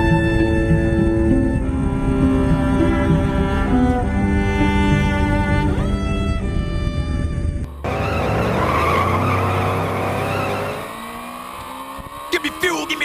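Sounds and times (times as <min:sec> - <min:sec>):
bowed string music: 0:00.0 - 0:11.4
motorcycle engine at speed: 0:07.7 - 0:13.0.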